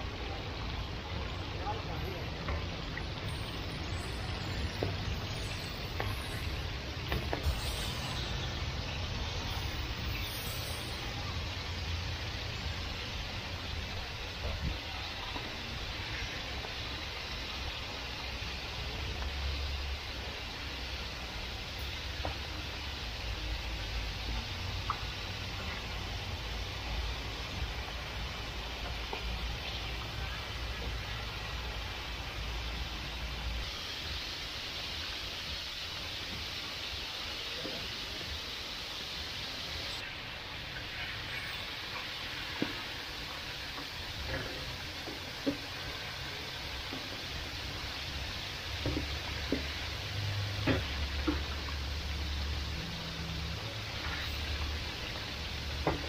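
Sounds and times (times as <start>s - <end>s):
oil sizzling in deep fryer: 0.0s - 56.0s.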